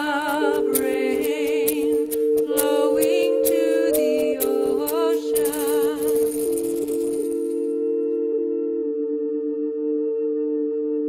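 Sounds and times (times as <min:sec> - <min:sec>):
chant singing with vibrato: 0:00.0 - 0:06.8
shaker rattling: 0:00.0 - 0:07.7
drone of held notes: 0:00.0 - 0:11.0.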